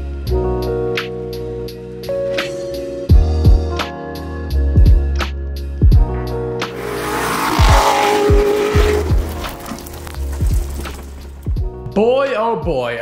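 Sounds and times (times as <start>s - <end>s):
music with kick-drum beat: 3.1s - 3.8s, 5.8s - 6.2s
car engine: 6.6s - 11.4s
tyres sliding through dirt: 6.6s - 11.6s.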